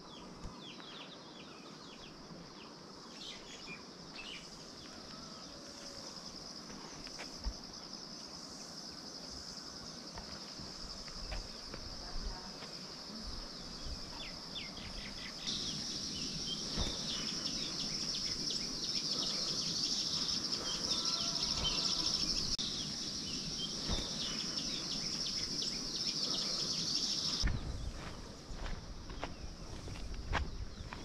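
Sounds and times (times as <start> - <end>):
high-pitched insect buzz: 3.5 - 27.4
birds chirping: 13.0 - 28.4.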